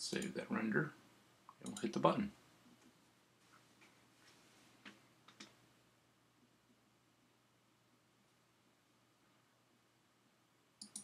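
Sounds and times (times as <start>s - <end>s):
faint clicks: 10.8s - 11.0s.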